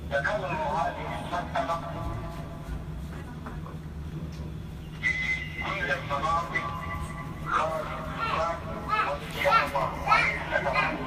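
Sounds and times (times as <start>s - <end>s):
steady low hum: 0.0s - 11.0s
children talking: 7.0s - 11.0s.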